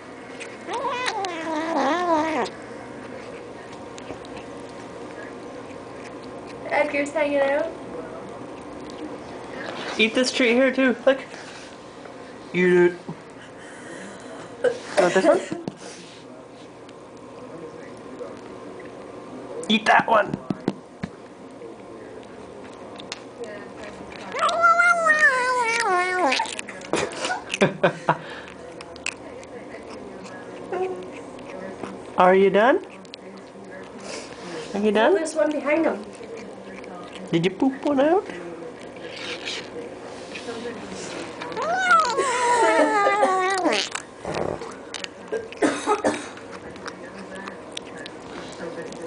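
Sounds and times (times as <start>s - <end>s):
kitten squealing: 0.7s - 2.5s, 24.3s - 26.6s, 41.6s - 44.0s.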